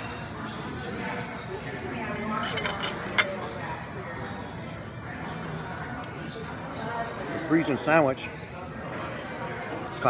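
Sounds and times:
chatter of diners: 0.0s - 10.0s
cutlery clinks: 2.1s - 3.4s
metal fork clinking down: 2.2s - 3.4s.

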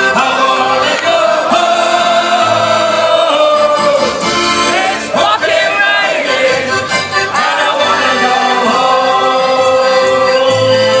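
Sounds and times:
live band music: 0.0s - 11.0s
voices singing together: 0.0s - 11.0s.

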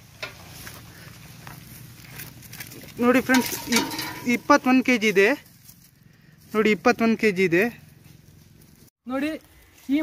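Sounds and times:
sheep hoof steps on leaves: 0.5s - 6.0s.

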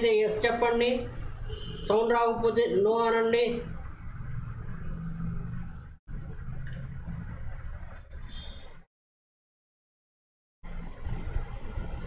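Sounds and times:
low rumbling hum: 3.6s - 8.8s.

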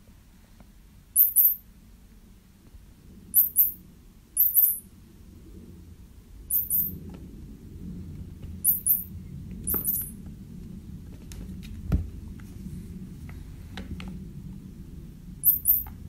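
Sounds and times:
faint low rumble: 0.0s - 16.0s
high-pitched mouse squeaks: 1.2s - 1.6s, 3.4s - 3.8s, 4.4s - 4.8s, 6.5s - 7.0s, 8.6s - 9.1s, 9.7s - 10.1s, 15.4s - 16.0s.

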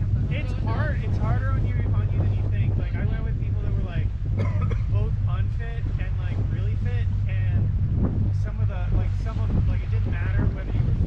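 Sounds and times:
people's voices: 0.0s - 7.6s
outboard motor running: 0.0s - 11.0s.

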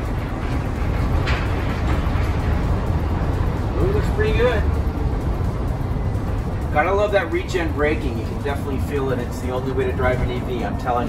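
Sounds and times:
road rumble inside van: 0.0s - 11.0s.

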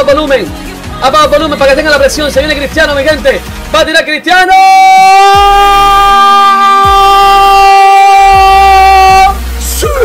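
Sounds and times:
man screaming goal: 4.4s - 10.0s.

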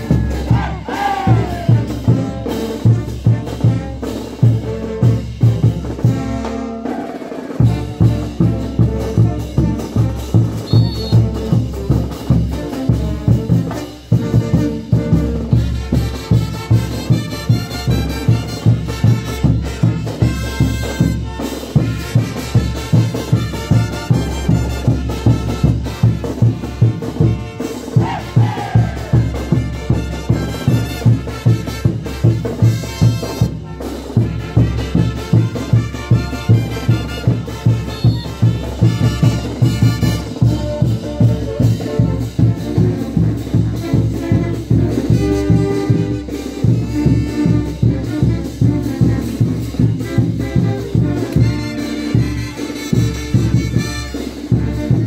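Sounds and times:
brass band melody: 0.0s - 55.0s
heavy drum beat: 0.0s - 55.0s.

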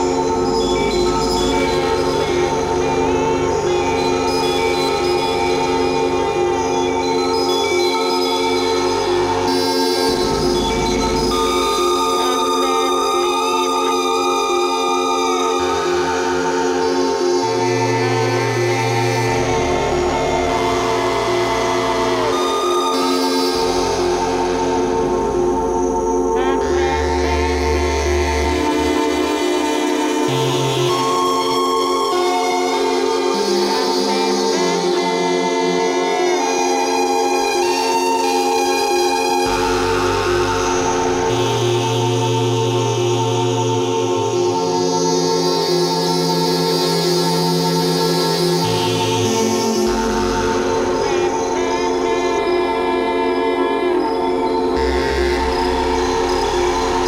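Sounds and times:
electronic drone music: 0.0s - 57.0s.

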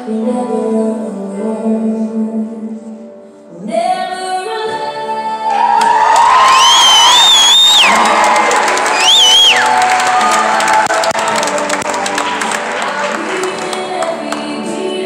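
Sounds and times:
slow sung ballad: 0.0s - 15.0s
high-pitched whoops: 5.4s - 11.4s
audience cheering: 5.6s - 13.8s
audience clapping: 5.7s - 14.7s.

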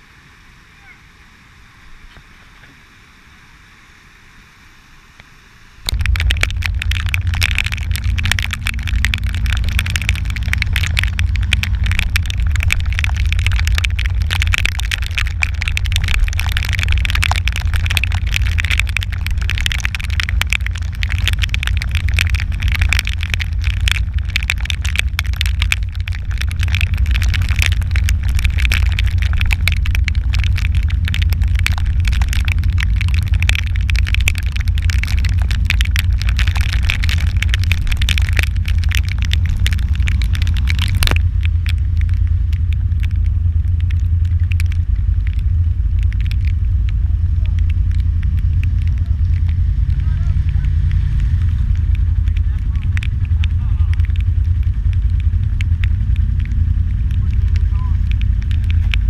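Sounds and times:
low steady rumble: 0.0s - 59.0s
raindrops crackling on camera: 5.8s - 59.0s.

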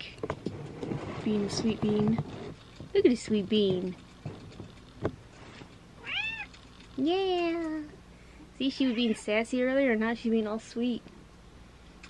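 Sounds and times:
cat meowing: 6.0s - 6.5s, 8.8s - 9.3s.

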